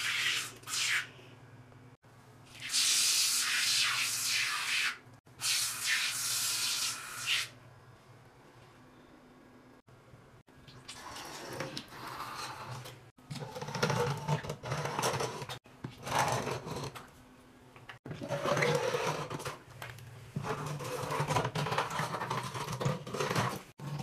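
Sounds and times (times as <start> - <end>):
plastic nozzle scraping tile grout: 20.4 - 23.6.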